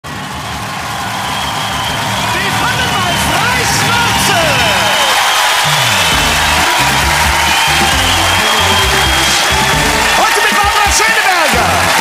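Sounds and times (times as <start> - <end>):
studio audience noise: 0.1 - 12.0
television theme music with bass line: 0.9 - 12.0.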